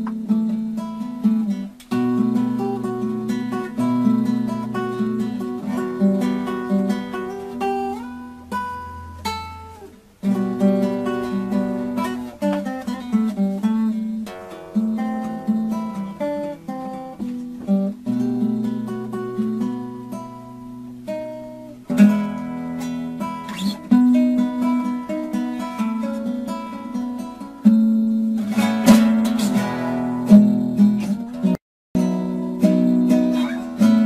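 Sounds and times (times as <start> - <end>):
solo acoustic guitar: 0.0 - 34.0.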